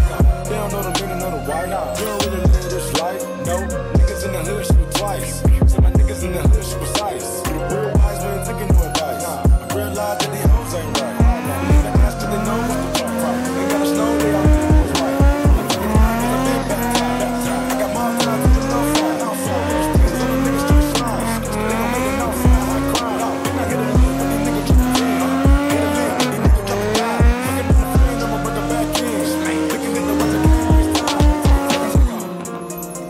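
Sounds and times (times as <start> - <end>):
car engine revving: 0.0 - 33.0
hip hop music: 0.0 - 33.0.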